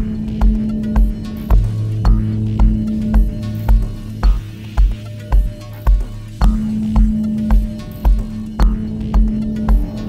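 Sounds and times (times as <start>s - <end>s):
chill electronic music: 0.0s - 10.0s.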